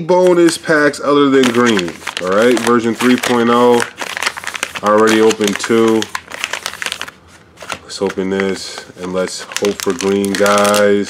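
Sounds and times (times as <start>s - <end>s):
plastic wrappers crinkling: 0.3s - 11.0s.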